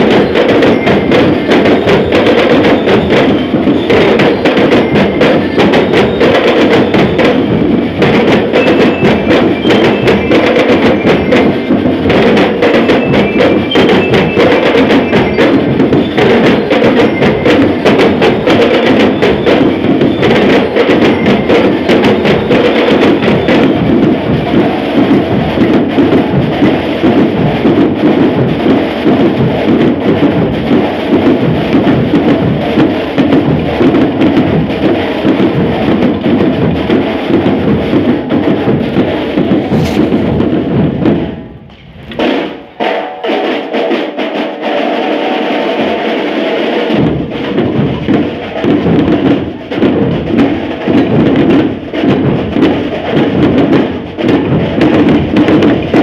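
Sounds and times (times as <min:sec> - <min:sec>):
marching snare and tenor drums: 0:00.0 - 0:56.0.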